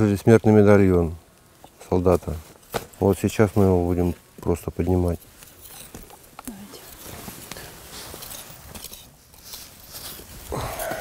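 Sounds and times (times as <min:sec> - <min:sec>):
footsteps rustling in leaf litter: 0:07.0 - 0:11.0.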